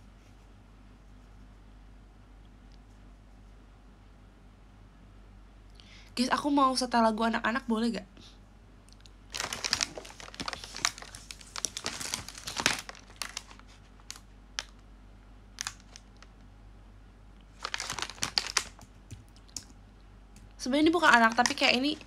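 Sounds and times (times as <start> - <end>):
rustling handling noise: 9.3 - 14.8, 15.6 - 16.3, 17.5 - 19.6, 20.9 - 22.0.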